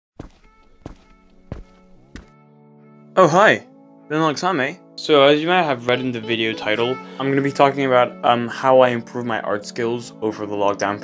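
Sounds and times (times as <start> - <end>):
footstep thuds: 0.2 - 2.4
soft held musical chord: 0.7 - 11.0.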